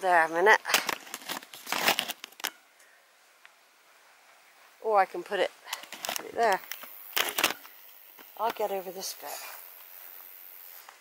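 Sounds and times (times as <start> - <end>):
camera handling noise: 0.7 - 2.6, 5.7 - 8.6.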